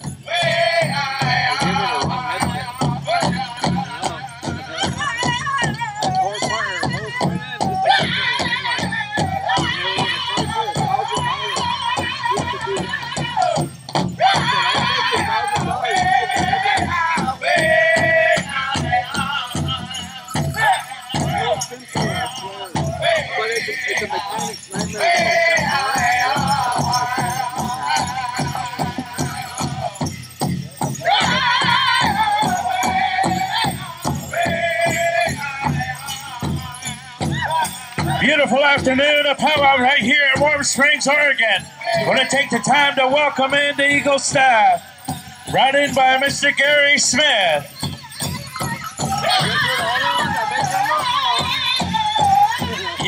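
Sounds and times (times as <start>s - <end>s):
high-pitched group singing: 0.0s - 40.2s, 41.2s - 53.0s
big drum steady beat: 0.0s - 41.1s
bells jingling: 0.0s - 53.0s.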